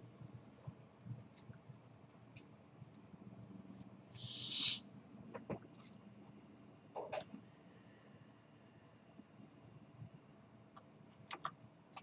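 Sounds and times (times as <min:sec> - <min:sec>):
short hiss: 0:04.2 - 0:04.8.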